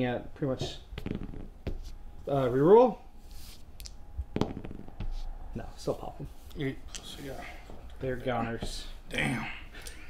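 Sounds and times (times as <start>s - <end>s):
dice clacking on a cloth mat: 3.8s - 5.3s.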